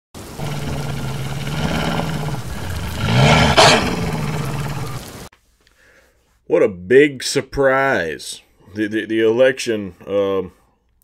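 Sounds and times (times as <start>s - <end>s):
loud rough roar: 0.2s - 5.3s.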